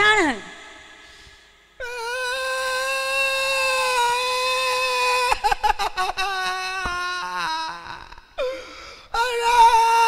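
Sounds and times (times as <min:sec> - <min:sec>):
person wailing: 0:01.8 - 0:08.2, 0:09.2 - 0:10.0.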